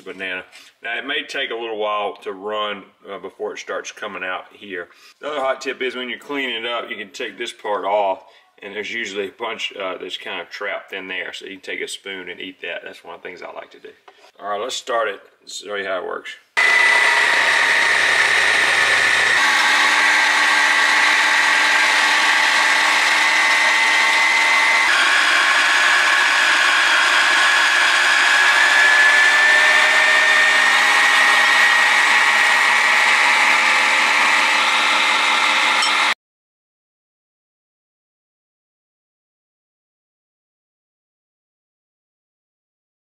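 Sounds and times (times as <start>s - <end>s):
electric motor whine: 16.6s - 36.2s.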